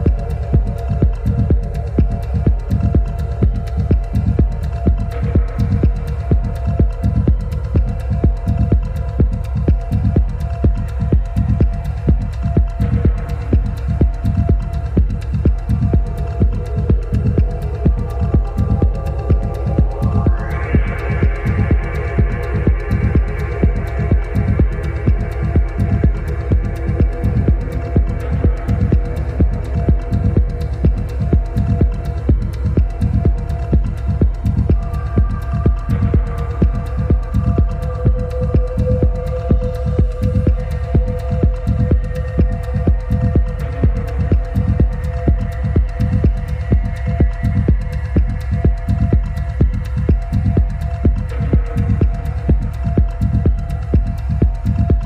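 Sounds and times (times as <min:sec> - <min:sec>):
droning synth tones: 0:00.0 - 0:55.0
steady kick drum: 0:00.0 - 0:55.0.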